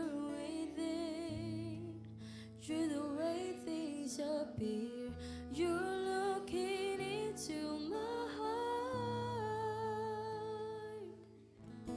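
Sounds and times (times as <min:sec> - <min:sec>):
acoustic guitar chord: 0:04.8 - 0:11.9.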